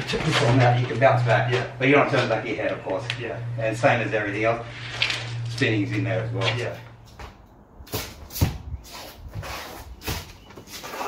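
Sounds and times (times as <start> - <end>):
sneakers scuffing on concrete: 6.0 - 11.0.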